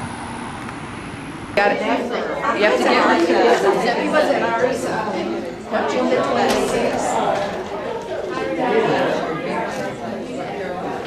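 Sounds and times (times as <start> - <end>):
people talking over one another: 1.6 - 11.0.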